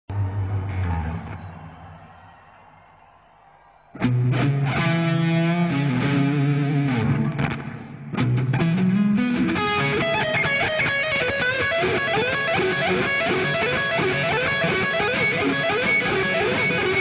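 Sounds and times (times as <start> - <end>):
distorted electric guitar solo: 0.1 - 1.6, 4.0 - 17.0.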